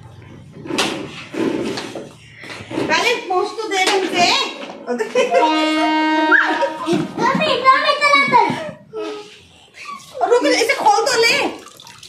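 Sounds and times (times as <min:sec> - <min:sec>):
voice holding a steady note: 0:05.3 - 0:06.9.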